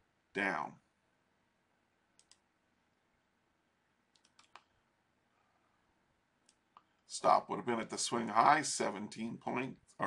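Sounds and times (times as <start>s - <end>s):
faint computer mouse clicks: 2.2s - 2.4s, 4.1s - 4.7s.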